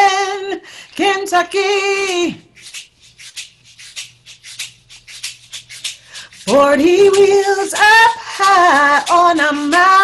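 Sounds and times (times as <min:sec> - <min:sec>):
hand rattle shaking: 0:00.0 - 0:10.0.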